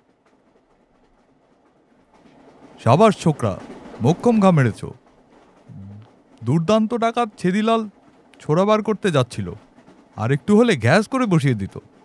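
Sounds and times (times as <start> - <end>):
man making falling vocal sounds: 5.7 - 6.0.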